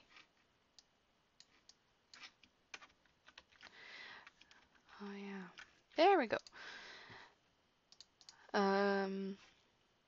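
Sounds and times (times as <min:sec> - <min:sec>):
computer keyboard and mouse clicks: 0:00.8 - 0:04.9, 0:05.5 - 0:06.6, 0:07.9 - 0:08.4.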